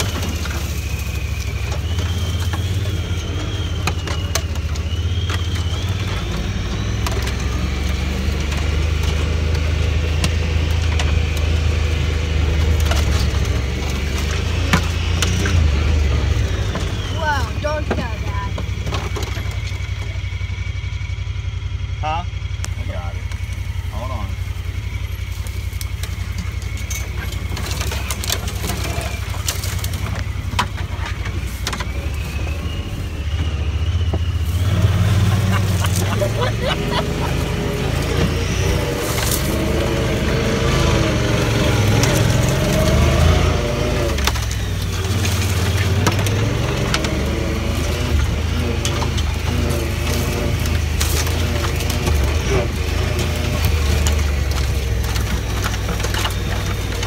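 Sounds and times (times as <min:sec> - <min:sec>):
utility vehicle engine running: 0:00.0 - 0:57.0.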